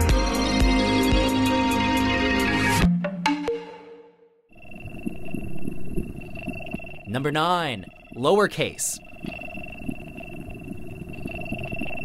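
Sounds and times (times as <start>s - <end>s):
faint low crackling rumble: 4.6s - 8.2s, 8.9s - 12.0s.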